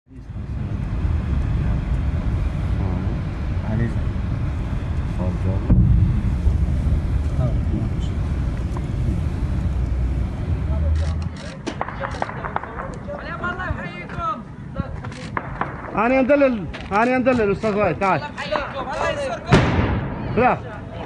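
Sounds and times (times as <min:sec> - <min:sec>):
vehicle rumbling over rough road: 0:00.1 - 0:13.4
sudden loud knock: 0:05.7 - 0:06.1.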